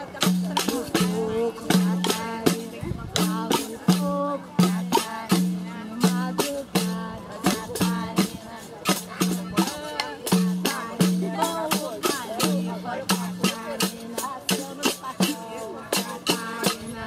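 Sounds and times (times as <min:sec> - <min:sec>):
frame drums and jingles rhythm: 0:00.0 - 0:17.0
voices: 0:00.0 - 0:17.0.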